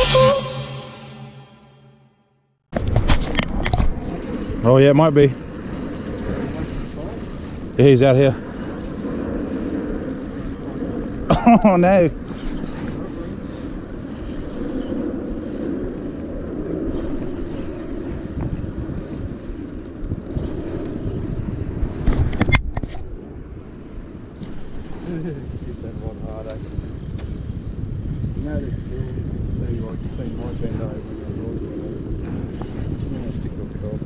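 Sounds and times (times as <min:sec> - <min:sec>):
wind noise on microphone: 0:02.7 - 0:34.0
spinning reel cranking: 0:03.9 - 0:21.8, 0:24.4 - 0:34.0.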